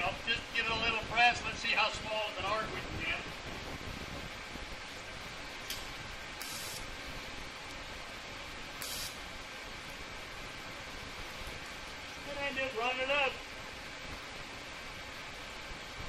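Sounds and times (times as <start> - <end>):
welding arc crackles: 0.2 - 9.9
welding arc hissing: 5.6 - 7.1, 8.7 - 9.3.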